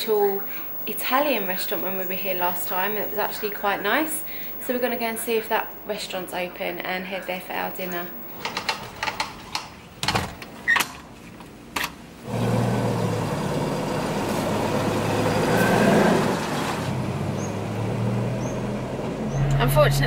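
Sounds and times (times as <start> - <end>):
small car engine running: 12.3 - 20.0.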